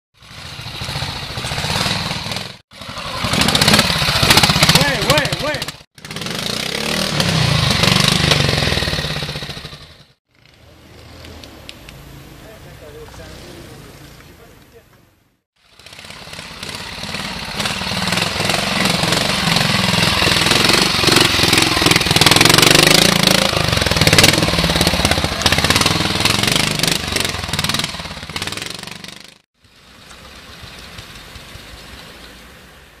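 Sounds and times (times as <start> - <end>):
motorcycle engine revving: 0.2 - 14.4, 15.6 - 32.0.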